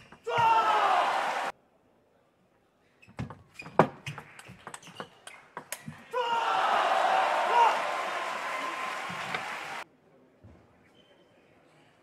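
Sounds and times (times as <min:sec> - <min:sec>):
crowd cheering: 0:00.2 - 0:01.5, 0:06.1 - 0:09.8
loud shouting: 0:00.2 - 0:01.5, 0:06.1 - 0:09.8.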